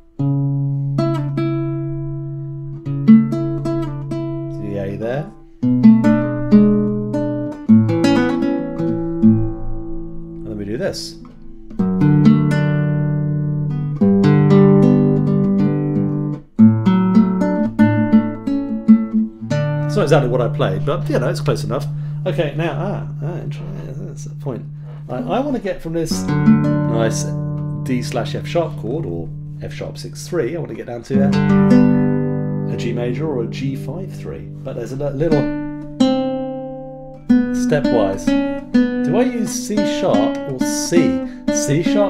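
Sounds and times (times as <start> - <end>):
classical guitar playing chords: 0.0 - 42.0.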